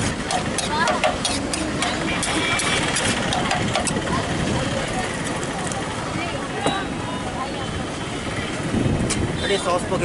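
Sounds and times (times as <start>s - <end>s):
engines idling: 0.0s - 8.8s
people talking: 0.3s - 10.0s.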